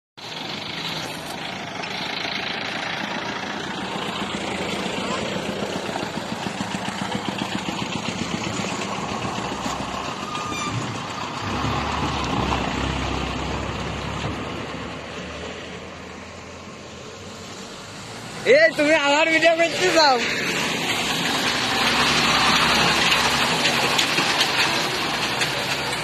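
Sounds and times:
bus engine rumble: 0:00.2 - 0:26.0
truck passing: 0:00.2 - 0:26.0.

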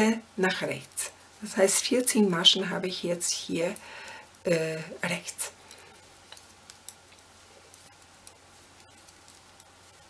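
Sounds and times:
low room hiss: 0:00.0 - 0:10.0
metal knitting needles clicking: 0:05.2 - 0:10.0.

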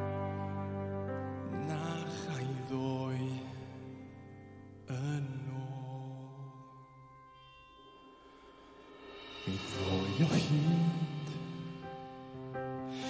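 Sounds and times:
piano: 0:00.0 - 0:13.0
man singing: 0:01.4 - 0:07.0, 0:09.3 - 0:13.0.

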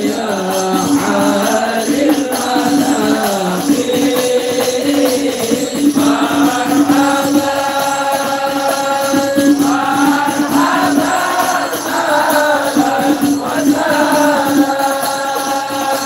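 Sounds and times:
frame drums beating: 0:00.0 - 0:16.0
men chanting in unison: 0:00.0 - 0:16.0.

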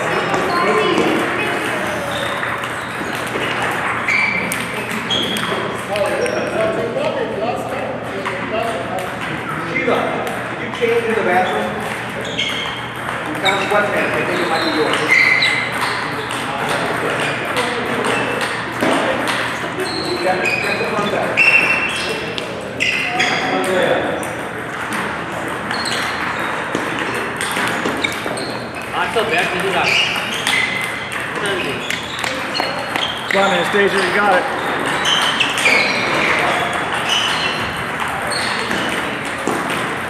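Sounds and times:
table tennis ball on paddles: 0:00.0 - 0:40.0
voices in background: 0:00.0 - 0:40.0.

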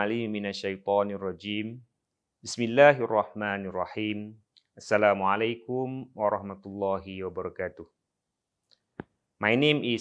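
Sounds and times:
man speaking: 0:00.0 - 0:08.0, 0:09.4 - 0:10.0.

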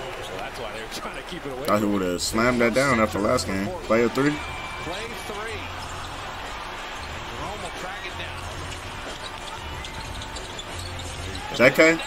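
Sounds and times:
crowd din: 0:00.0 - 0:12.0
commentator talking: 0:00.5 - 0:05.7.

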